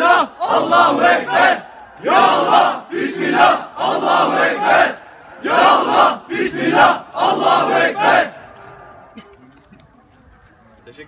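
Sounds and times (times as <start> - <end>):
men shouting slogans in unison: 0.0 - 8.4.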